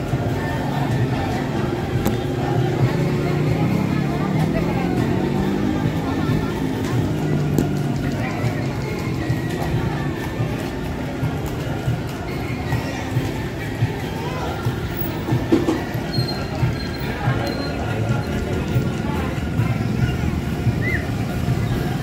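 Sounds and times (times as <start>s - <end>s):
crowd chatter: 0.0s - 22.0s
music: 0.0s - 22.0s.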